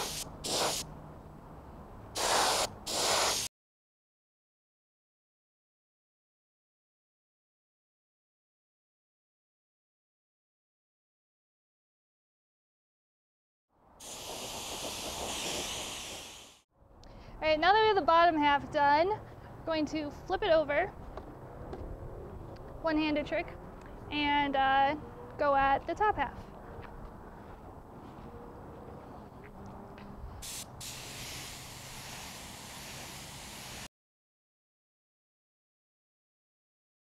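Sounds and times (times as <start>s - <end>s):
air blast: 0.0s - 0.8s, 2.2s - 3.5s, 14.0s - 16.6s, 30.4s - 33.9s
spray gun hissing: 0.0s - 0.8s, 2.2s - 3.5s, 14.0s - 16.6s, 30.4s - 33.9s.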